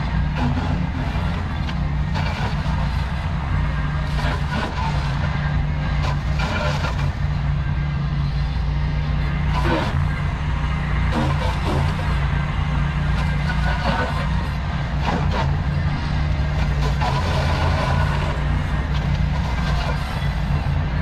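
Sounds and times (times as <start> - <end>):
tractor engine running under load: 0.0 - 21.0.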